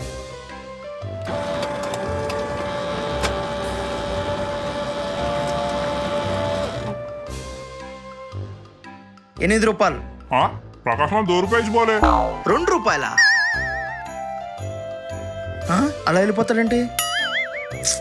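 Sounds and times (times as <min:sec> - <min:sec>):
background music: 0:00.0 - 0:18.0
photocopier whirring: 0:01.3 - 0:07.1.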